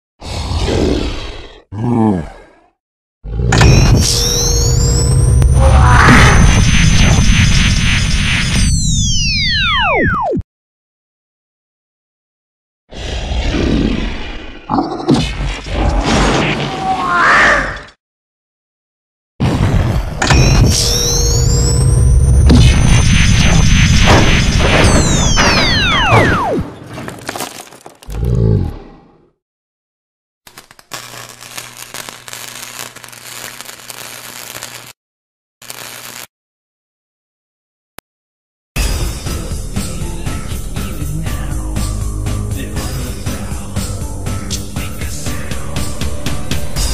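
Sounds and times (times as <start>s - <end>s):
loud monster roar: 0.2s - 2.6s
crackling of sparks: 30.5s - 35.0s, 35.6s - 36.3s.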